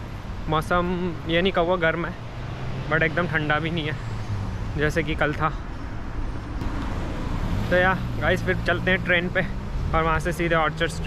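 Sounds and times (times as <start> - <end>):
street noise: 0.0 - 11.0
vehicle engine humming: 0.0 - 11.0.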